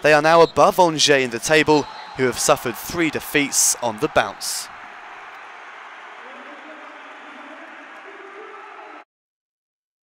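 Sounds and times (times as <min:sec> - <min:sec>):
stadium crowd din: 0:00.0 - 0:09.0.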